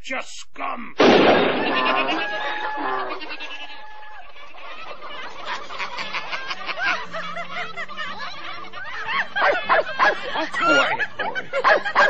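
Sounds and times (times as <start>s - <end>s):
voices snickering and chuckling: 1.3s - 12.0s.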